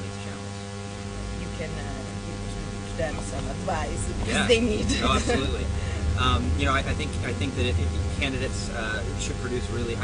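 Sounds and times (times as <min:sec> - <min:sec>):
car cabin hum: 0:00.8 - 0:10.0
deep rumble: 0:00.8 - 0:10.0
person speaking: 0:04.1 - 0:09.2.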